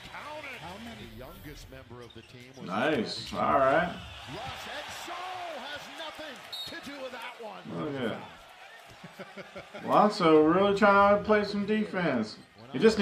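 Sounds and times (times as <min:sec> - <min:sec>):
commentator talking: 0:00.0 - 0:08.3, 0:09.8 - 0:13.0
arena crowd noise: 0:00.0 - 0:13.0.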